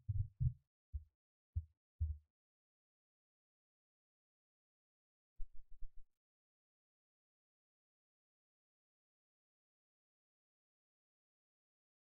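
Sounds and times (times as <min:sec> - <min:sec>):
dull low thumps: 0:00.0 - 0:00.6.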